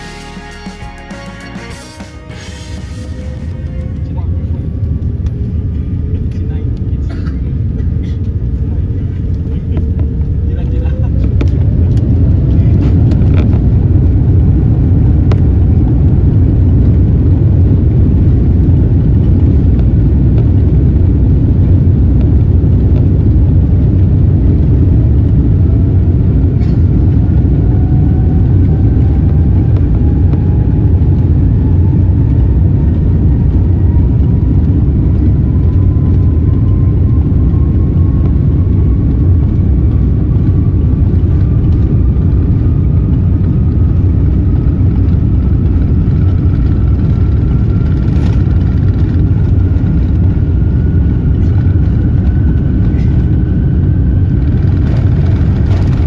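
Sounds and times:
jet engines roaring with rising whine: 0:00.0 - 0:56.0.

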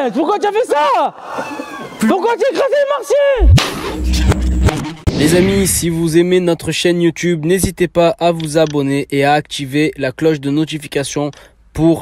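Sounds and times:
deep boom with hiss: 0:03.4 - 0:06.2
low rumble: 0:03.4 - 0:06.4.

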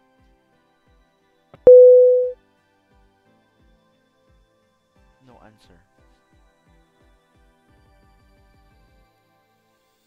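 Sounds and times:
loud steady beep: 0:01.7 - 0:02.3.

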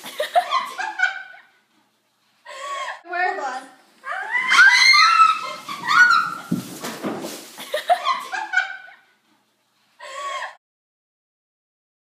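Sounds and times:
girls shrieking: 0:04.0 - 0:06.5.

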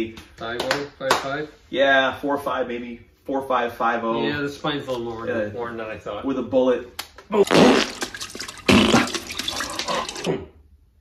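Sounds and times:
toilet water rushing and splashing: 0:07.5 - 0:10.3.

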